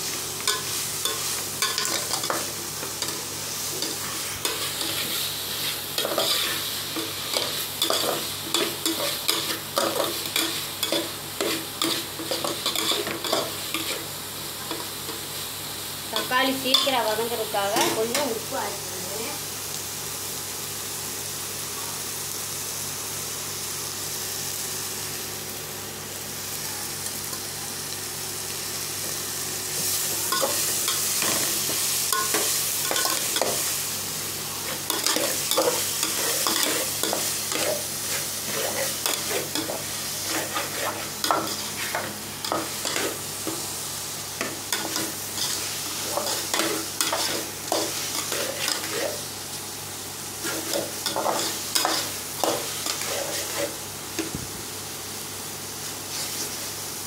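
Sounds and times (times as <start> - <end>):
vegetables sizzling in oil: 0.0 - 57.0.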